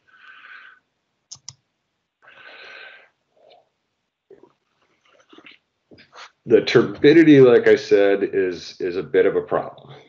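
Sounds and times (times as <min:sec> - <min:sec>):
computer mouse clicks: 0:01.3 - 0:01.6
breath into microphone: 0:02.3 - 0:03.2.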